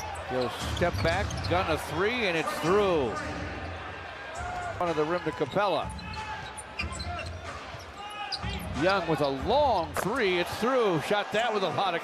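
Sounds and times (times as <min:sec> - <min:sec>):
arena crowd hubbub: 0:00.0 - 0:12.0.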